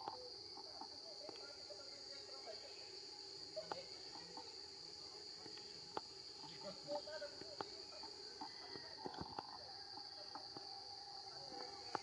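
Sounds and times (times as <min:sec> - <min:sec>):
insect chorus drone: 0:00.0 - 0:12.0.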